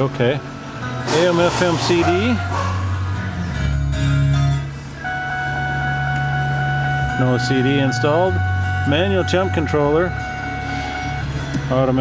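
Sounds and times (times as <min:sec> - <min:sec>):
music from car radio: 0:00.2 - 0:12.0.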